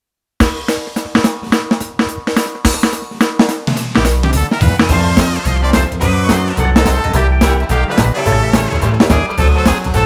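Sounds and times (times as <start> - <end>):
drum kit fast beat: 0.4 - 10.0
keyboard chord tones: 4.2 - 10.0.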